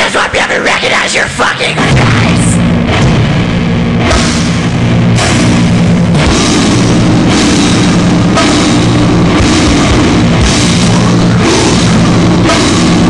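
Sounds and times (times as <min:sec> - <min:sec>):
heavy rock music: 0:00.0 - 0:13.0
cymbal crashes: 0:02.9 - 0:13.0.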